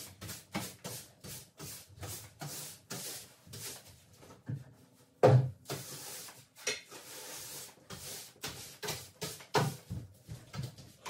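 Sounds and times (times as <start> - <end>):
floor cleaning tool rubbing floor: 0.0 - 4.0, 5.6 - 10.9.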